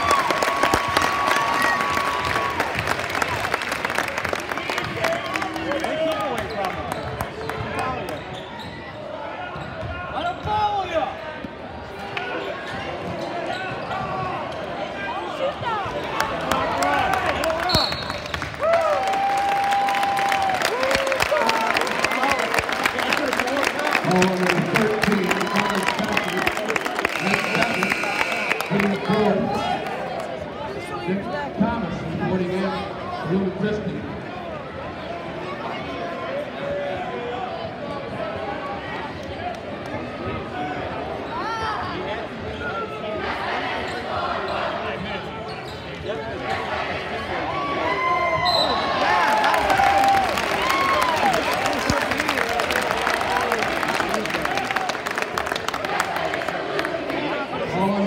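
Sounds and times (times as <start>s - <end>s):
crowd talking and shouting: 0.0s - 58.0s.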